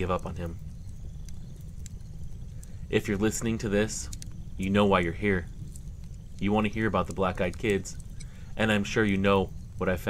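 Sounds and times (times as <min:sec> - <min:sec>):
fire crackles and pops: 0:00.0 - 0:10.0
fire low rumble: 0:00.0 - 0:10.0.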